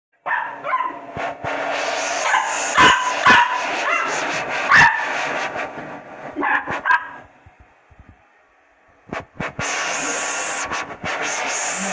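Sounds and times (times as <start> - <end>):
puppy yapping: 0.2 - 1.0, 2.2 - 5.2, 6.4 - 7.3
hair dryer blowing hum: 1.0 - 6.8, 9.1 - 11.9.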